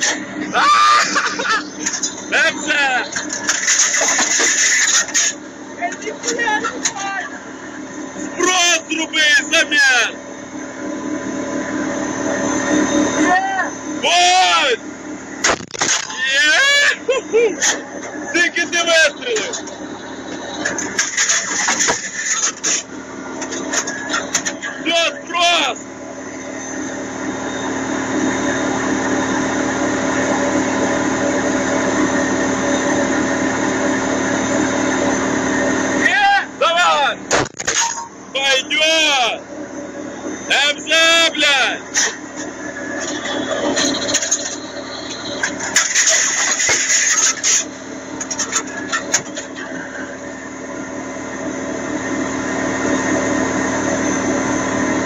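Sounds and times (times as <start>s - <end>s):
armoured vehicle engine drone: 0.0s - 55.0s
men's voices: 16.1s - 19.6s.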